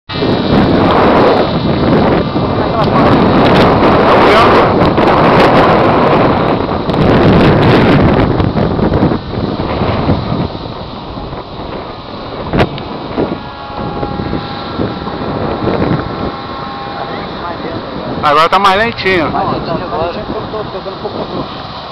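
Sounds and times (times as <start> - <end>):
wind buffeting microphone: 0.1 - 21.9.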